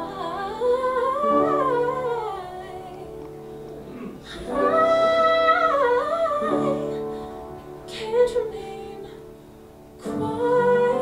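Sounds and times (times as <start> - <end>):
woman singing wordless line: 0.0 - 3.3, 4.2 - 9.4, 10.0 - 11.0
piano chords: 0.0 - 11.0.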